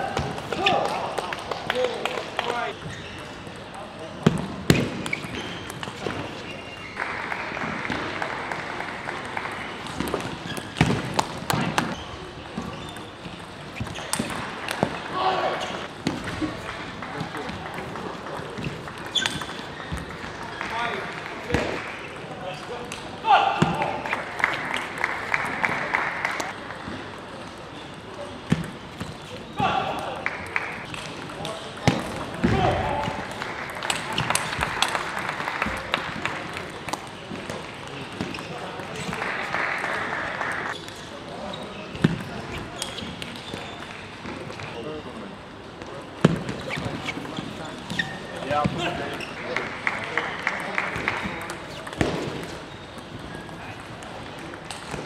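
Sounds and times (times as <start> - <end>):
murmur of a large hall: 0.0 - 55.0.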